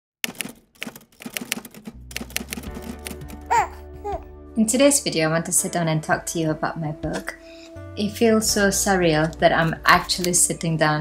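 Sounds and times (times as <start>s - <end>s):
typewriter key clacks: 0.2s - 3.4s.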